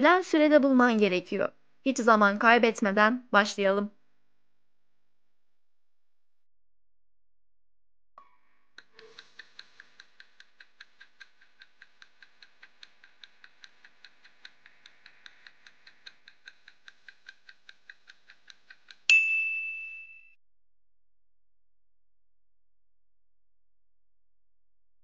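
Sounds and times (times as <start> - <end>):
loud ringing ding: 19.1 - 20.4.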